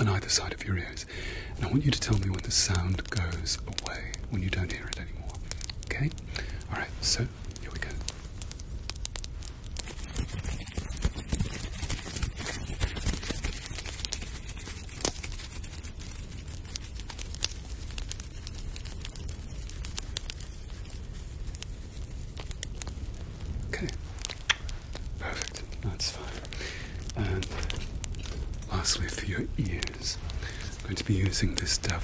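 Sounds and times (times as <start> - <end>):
rubbing and crinkling: 0.0 - 32.0
sharp crackles: 0.0 - 32.0.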